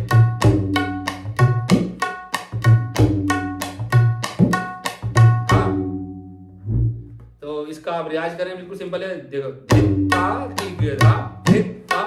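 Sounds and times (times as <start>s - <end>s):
tabla ringing: 0.0s - 6.9s, 9.7s - 12.0s
man speaking: 7.4s - 9.7s.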